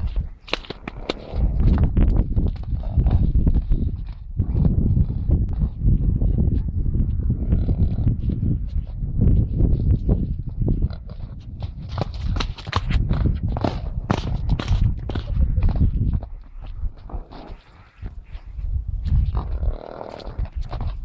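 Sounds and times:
constant low rumble: 0.0s - 21.0s.

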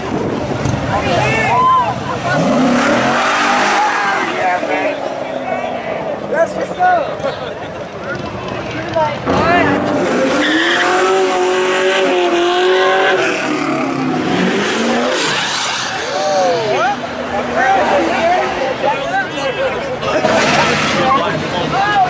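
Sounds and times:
tires squealing: 0.4s - 6.8s, 8.0s - 22.0s
car engine revving high: 2.0s - 5.8s, 9.2s - 18.6s.

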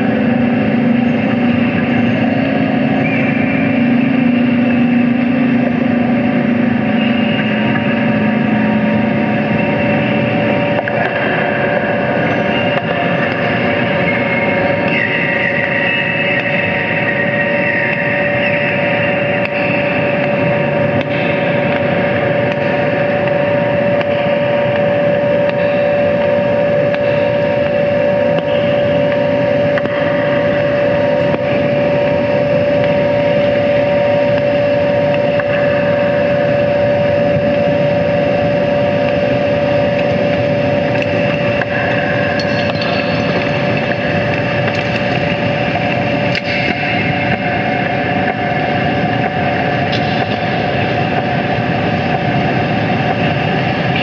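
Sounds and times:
higher held synth tone: 0.0s - 54.0s
synthesizer noise drone: 0.0s - 54.0s.

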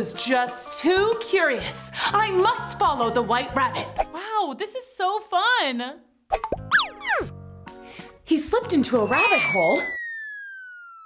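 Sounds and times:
falling pitch glides: 9.0s - 11.0s.

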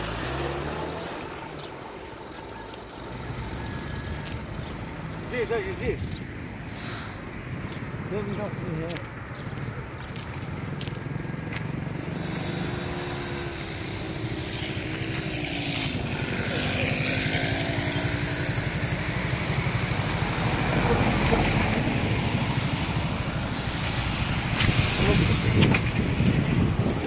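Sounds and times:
vehicle engines droning: 0.0s - 27.0s.

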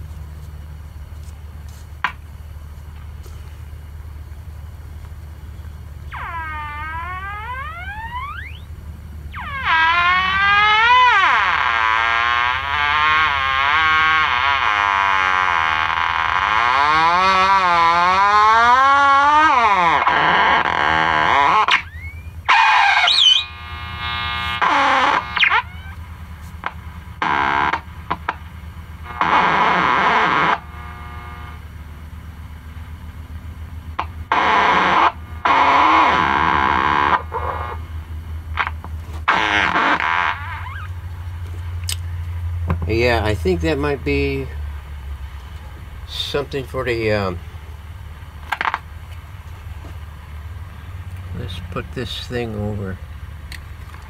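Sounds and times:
steady low hum: 0.0s - 54.0s
radio tuning whistles: 6.1s - 8.7s, 9.3s - 26.0s, 29.0s - 31.7s, 34.3s - 37.8s.

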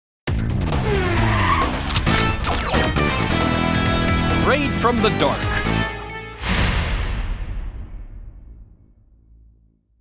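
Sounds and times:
music: 0.3s - 10.0s
tyres screeching: 0.7s - 2.5s.

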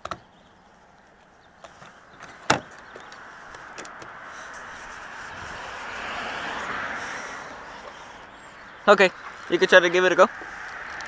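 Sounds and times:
car passing: 0.4s - 11.0s.

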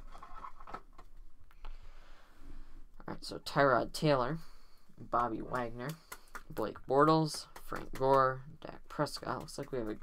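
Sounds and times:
cards and foil wrapper rustling: 0.0s - 1.0s.

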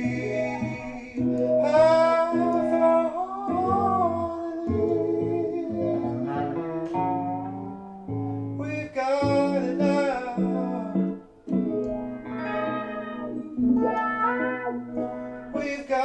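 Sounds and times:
man singing: 0.0s - 7.2s, 8.6s - 11.3s, 15.5s - 16.0s
plucked guitar notes: 0.0s - 16.0s.

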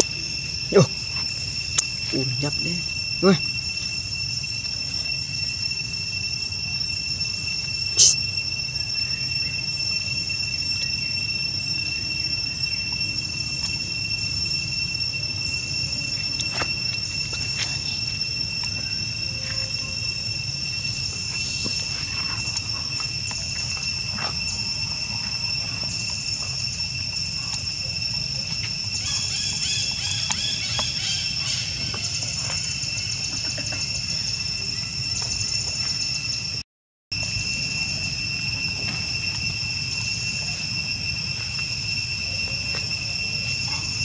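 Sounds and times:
high-pitched insect drone: 0.0s - 44.0s.

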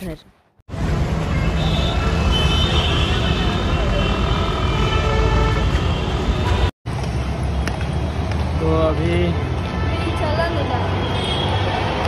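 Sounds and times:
passing vehicles rumbling: 0.7s - 12.0s.

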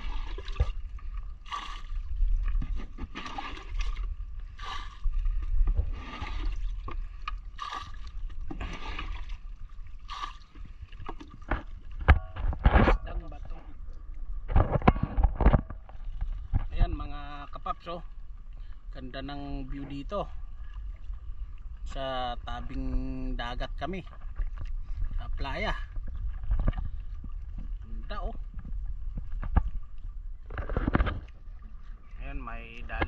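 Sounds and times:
water splashing: 0.0s - 14.6s
water lapping against boat hull: 0.0s - 33.0s.

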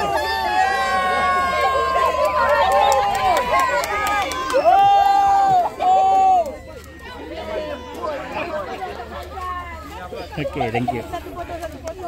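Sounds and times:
people chatting: 5.5s - 12.0s.

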